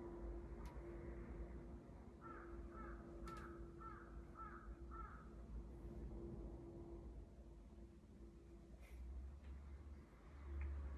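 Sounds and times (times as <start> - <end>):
bird calling faintly: 2.2 - 5.3.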